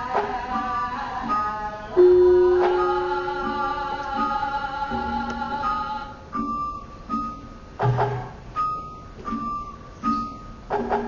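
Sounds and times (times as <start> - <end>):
gamelan metallophones ringing: 0.6 - 11.0.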